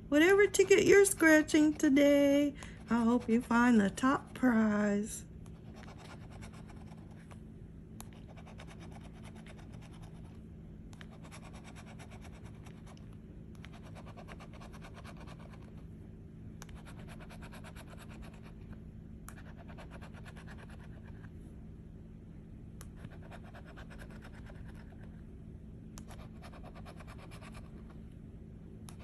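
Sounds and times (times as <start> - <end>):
scraping scratch-off ticket: 0.1 - 5.2.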